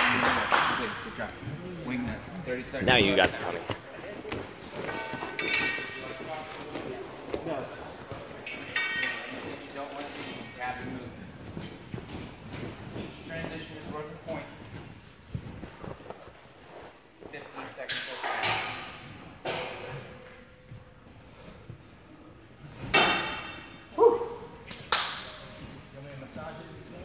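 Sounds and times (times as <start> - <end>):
sharp knocks and clanks: 17.9 - 20.3, 22.8 - 23.8.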